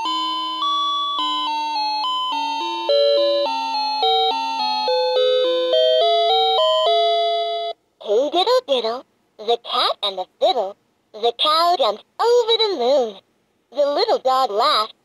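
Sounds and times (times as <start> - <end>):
toy chime melody: 0.0 - 7.8.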